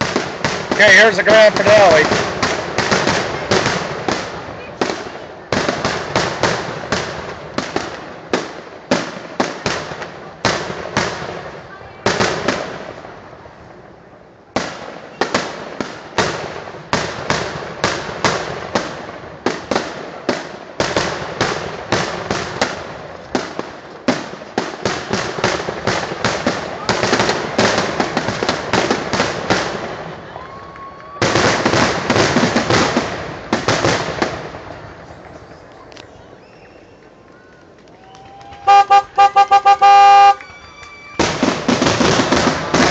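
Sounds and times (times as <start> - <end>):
fireworks bursting with sharp bangs: 0.0 - 42.9.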